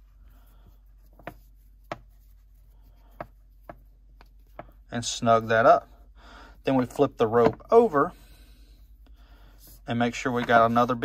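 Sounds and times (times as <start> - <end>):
rope fibres rubbing and rustling: 0.0 - 4.5.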